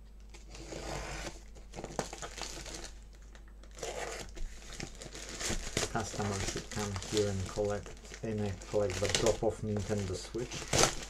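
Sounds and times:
packaging tape crinkling and tearing: 0:00.3 - 0:11.0.

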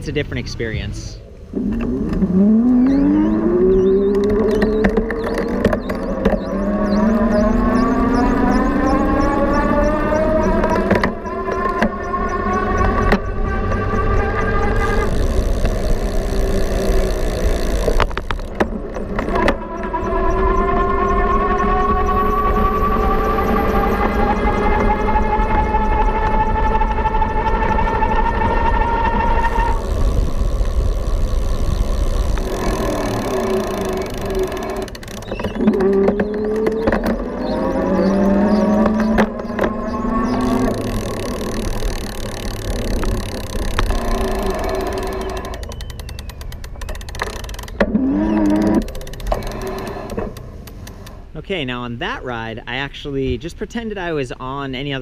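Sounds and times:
wind and tyre noise: 0:00.0 - 0:55.0
electric motor whining: 0:01.3 - 0:51.2.

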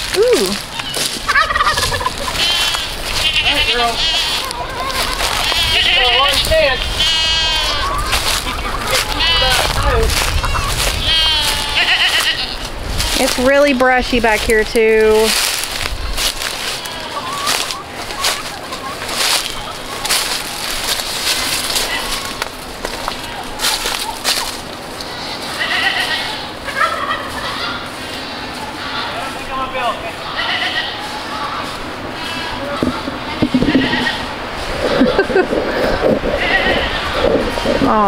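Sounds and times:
footsteps crunching through dry leaves: 0:00.0 - 0:38.0.

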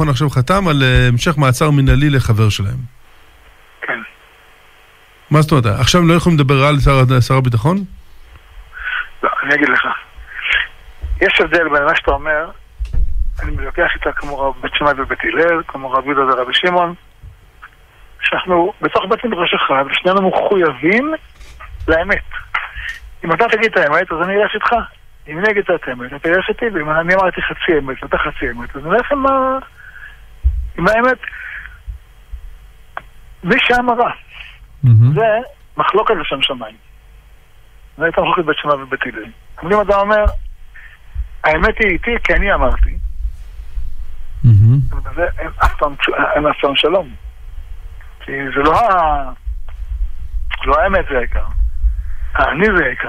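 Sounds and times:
man speaking over telephone: 0:00.0 - 0:02.9, 0:03.8 - 0:04.1, 0:05.3 - 0:07.9, 0:34.8 - 0:35.4.

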